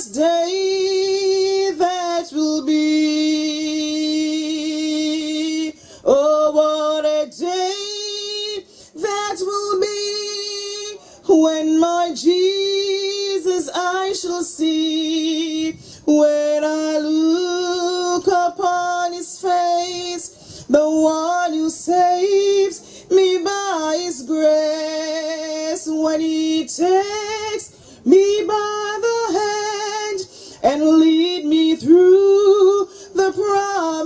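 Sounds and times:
woman singing a hymn: 0.0 - 34.0.

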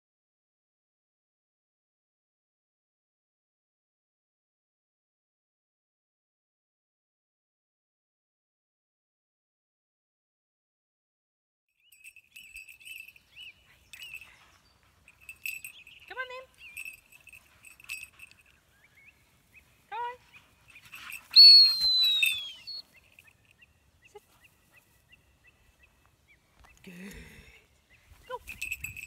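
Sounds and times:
birds chirping: 11.8 - 29.0
short rising calls: 20.8 - 23.5
loud falling whistle: 21.4 - 22.8.

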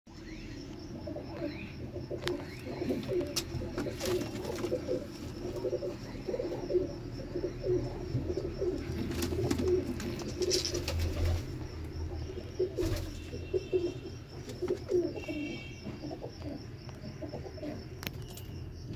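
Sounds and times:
pigeons cooing: 0.9 - 17.9.

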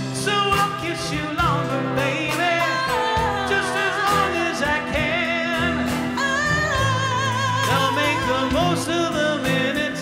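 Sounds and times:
acoustic guitar: 0.0 - 10.0
electric bass: 0.0 - 10.0
woman singing with vibrato: 0.2 - 10.0.

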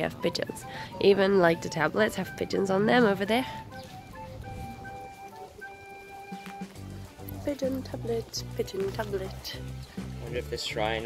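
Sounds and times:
gentle melody of long notes: 0.0 - 9.4.

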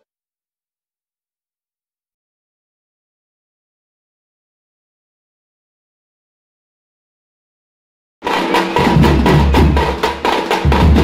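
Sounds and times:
frame drums struck with sticks: 8.2 - 11.0.

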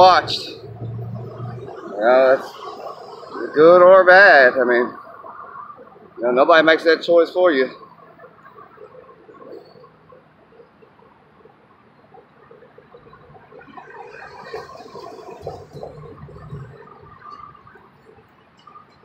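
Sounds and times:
suv driving past: 0.0 - 6.2, 11.4 - 19.0.

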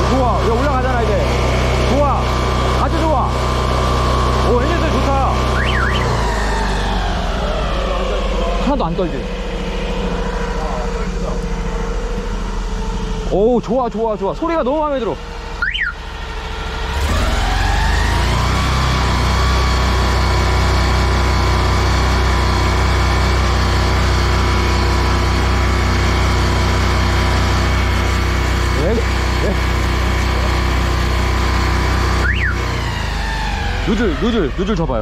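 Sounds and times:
engine droning: 0.0 - 35.0
short high chirp: 5.5 - 6.2, 32.2 - 32.6.

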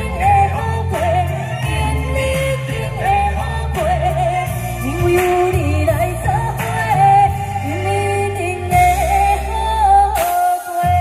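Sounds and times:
amplified backing track: 0.0 - 11.0
woman singing into microphone: 0.0 - 11.0.

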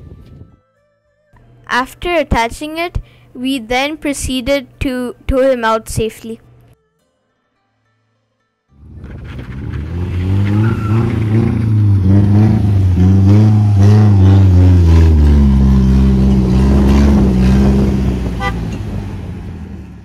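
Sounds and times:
car engine revving under load: 8.8 - 20.0.

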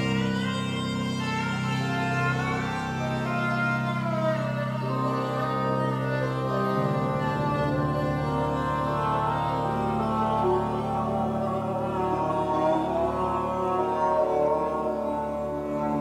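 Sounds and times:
held low synthesizer notes: 0.0 - 16.0.

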